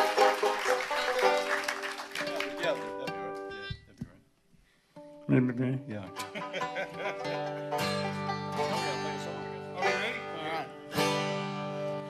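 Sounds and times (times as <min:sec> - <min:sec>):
acoustic guitar strumming: 0:00.0 - 0:03.9, 0:05.0 - 0:12.0
banjo picking: 0:00.0 - 0:03.9, 0:05.0 - 0:12.0.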